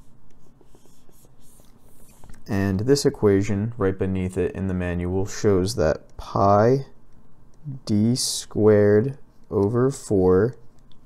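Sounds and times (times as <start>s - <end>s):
stylus scratching on tablet screen: 0.0s - 2.5s.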